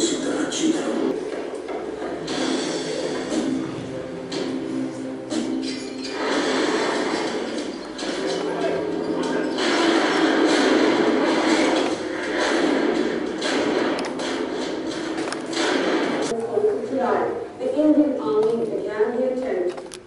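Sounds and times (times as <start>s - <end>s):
documentary soundtrack over loudspeakers: 0.0s - 20.0s.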